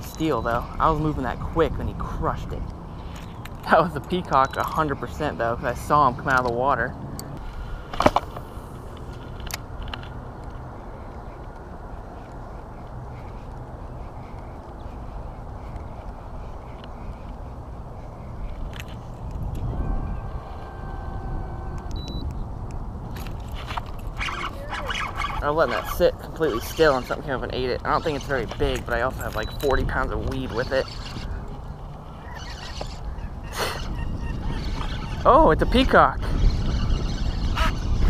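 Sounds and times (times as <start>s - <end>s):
wind rumble on microphone: 0.0s - 38.0s
faint multi-tone hum: 19.4s - 22.8s.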